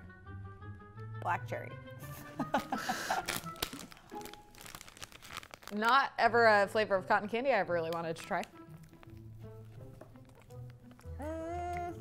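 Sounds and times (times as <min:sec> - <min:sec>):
woman giggling: 0:02.0 - 0:03.3
plastic bag crinkling: 0:02.4 - 0:06.1, 0:07.9 - 0:11.2.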